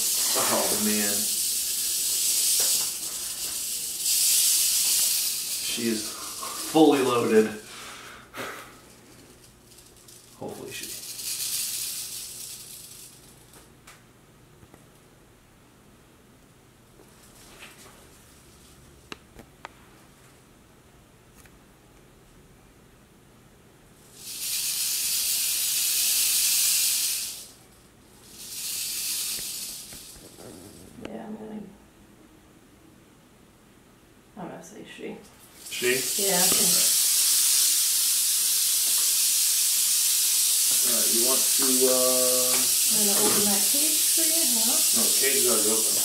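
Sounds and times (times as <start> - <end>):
rattlesnake tail rattle buzzing: 0.0 - 8.0, 8.7 - 13.7, 24.0 - 31.0, 35.4 - 46.0.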